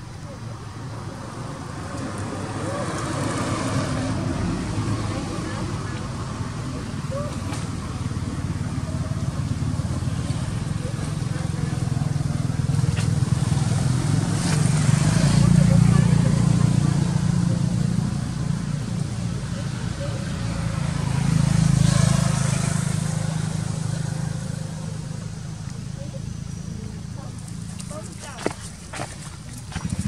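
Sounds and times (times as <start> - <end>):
faint voices: 0.0 - 30.0
passing vehicle engines rumbling: 0.0 - 30.0.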